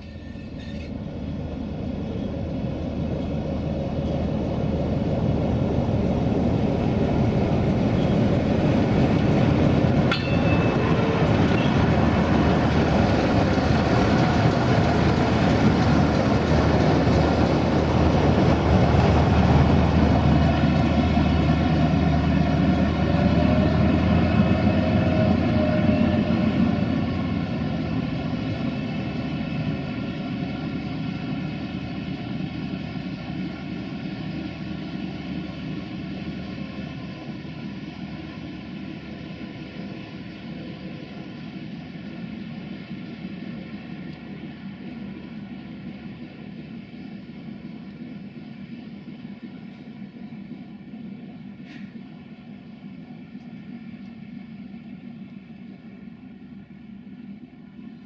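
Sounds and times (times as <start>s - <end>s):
diesel engine droning: 0.0s - 58.0s
locomotive wheel noise: 0.0s - 58.0s.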